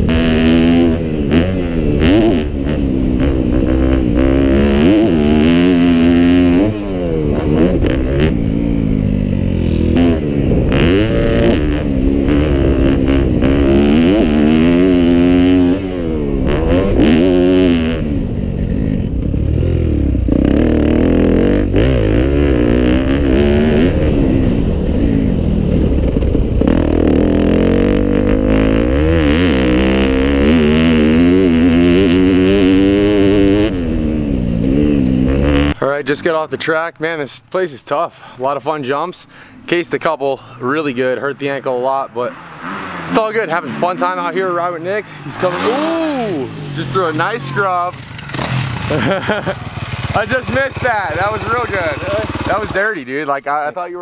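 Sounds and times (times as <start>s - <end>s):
dirt bike engine revving: 0.0s - 36.7s, 40.6s - 53.5s.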